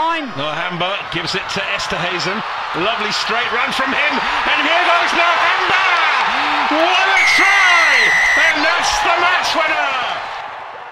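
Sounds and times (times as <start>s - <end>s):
man commentating excitedly: 0.0s - 10.3s
stadium crowd cheering: 0.0s - 10.9s
referee's whistle blast: 7.0s - 8.8s.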